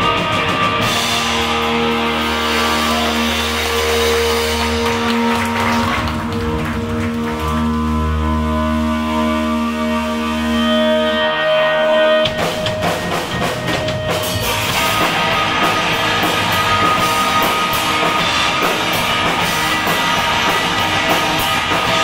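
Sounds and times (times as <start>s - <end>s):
drum kit: 0.0s - 22.0s
electric guitars and bass chords: 0.0s - 22.0s.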